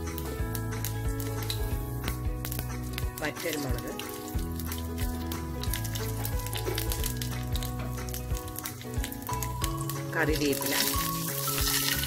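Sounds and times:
background music: 0:00.0 - 0:12.0
seeds crackling in hot oil: 0:00.0 - 0:12.0.

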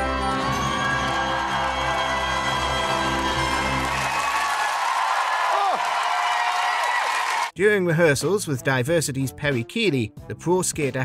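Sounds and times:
audience cheering: 0:00.8 - 0:07.6.

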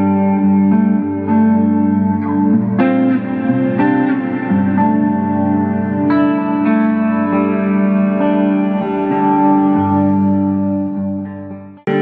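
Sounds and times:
electric guitar chords with effects: 0:00.0 - 0:12.0.

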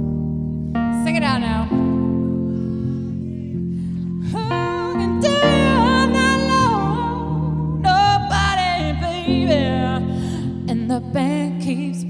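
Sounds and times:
keyboard and guitar chords: 0:00.0 - 0:12.0
woman singing long notes: 0:04.3 - 0:12.0.

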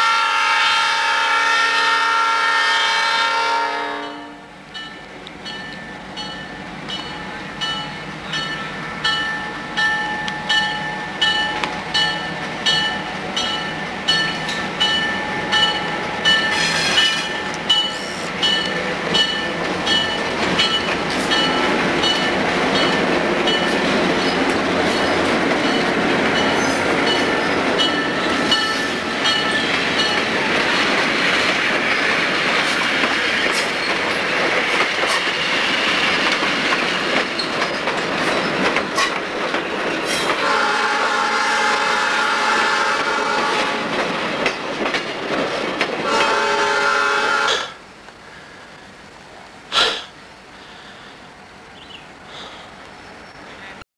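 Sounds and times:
locomotive bell ringing: 0:04.0 - 0:30.4
locomotive engine and wheels passing: 0:04.5 - 0:53.8.

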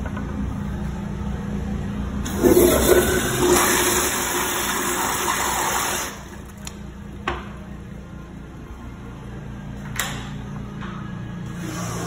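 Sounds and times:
toilet flushing: 0:02.2 - 0:06.5, 0:11.6 - 0:12.0.

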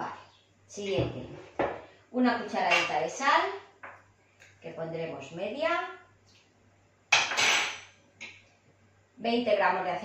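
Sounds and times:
kitchenware clatter: 0:02.6 - 0:03.0, 0:07.1 - 0:08.0.

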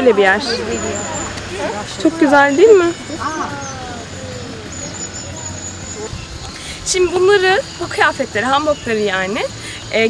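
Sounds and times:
faint high insect trill: 0:00.0 - 0:10.0.

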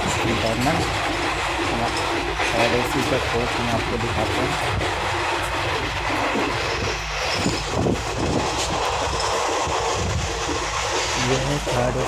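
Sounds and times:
train carriage rumble and rattle: 0:00.0 - 0:12.0
train wheels knocking: 0:00.0 - 0:12.0.

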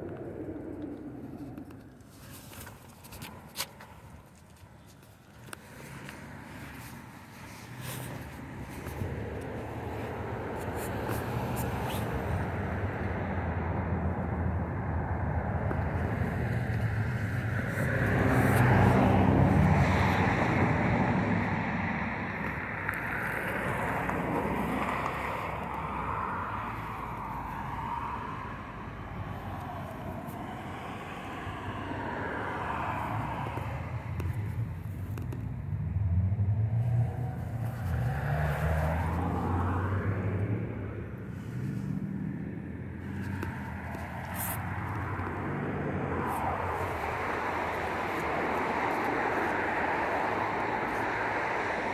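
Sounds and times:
cars passing by: 0:00.0 - 0:51.9.

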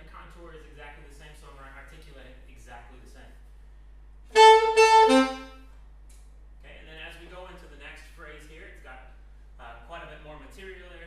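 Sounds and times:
saxophone phrase: 0:04.4 - 0:05.6.

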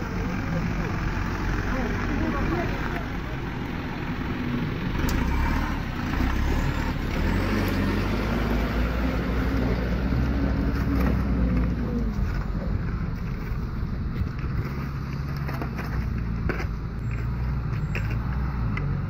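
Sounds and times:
faint voices: 0:00.0 - 0:04.3
truck engine rumbling: 0:00.0 - 0:19.0.

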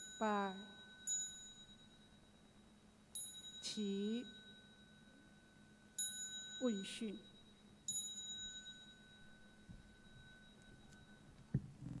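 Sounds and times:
small bell struck: 0:00.0 - 0:11.6
low ringing bell tone: 0:00.0 - 0:12.0.

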